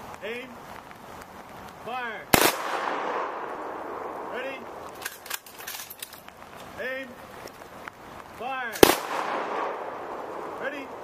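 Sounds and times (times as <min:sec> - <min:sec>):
rifle volley echo: 0:02.3 - 0:05.0, 0:08.7 - 0:11.0.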